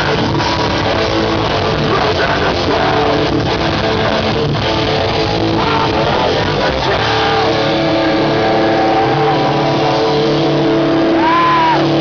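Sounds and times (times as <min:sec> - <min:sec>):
distorted electric guitars sustained chord: 0:00.0 - 0:12.0.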